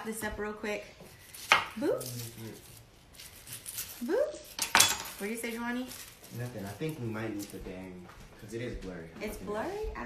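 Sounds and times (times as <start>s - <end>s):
knife slicing onion on board: 1.3s - 2.0s.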